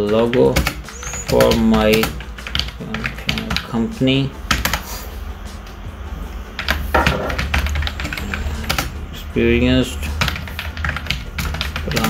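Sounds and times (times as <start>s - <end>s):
steady low hum: 0.7s - 12.0s.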